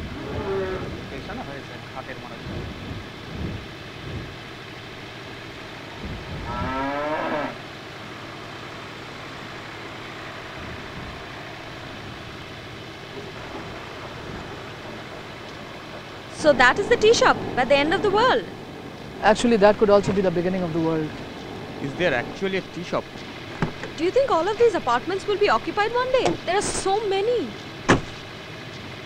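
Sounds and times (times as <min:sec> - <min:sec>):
cow mooing: 0:00.0 - 0:01.0, 0:06.4 - 0:07.6
background hiss: 0:00.0 - 0:29.0.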